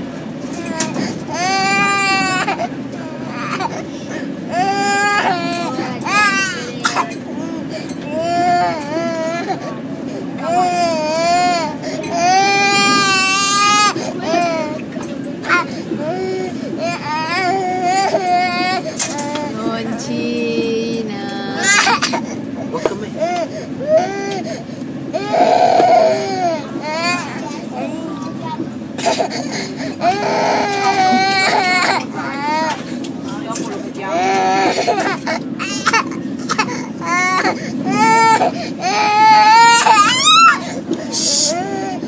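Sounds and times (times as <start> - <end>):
young child crying: 21.5 - 22.2, 34.1 - 42.0.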